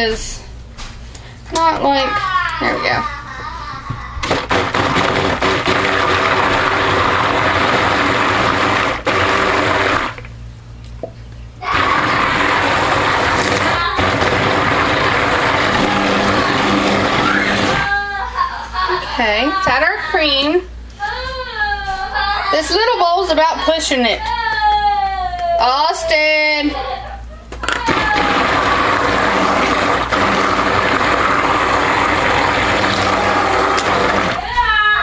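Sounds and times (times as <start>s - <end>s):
stick blender motor whine: 4.2s - 10.3s, 11.7s - 17.9s, 27.7s - 34.5s.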